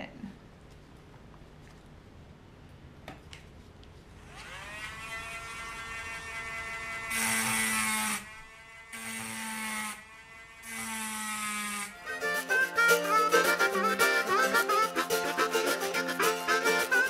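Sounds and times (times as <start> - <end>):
rotary tool grinding glass: 4.2 - 12.2
rotary tool whine: 4.2 - 12.5.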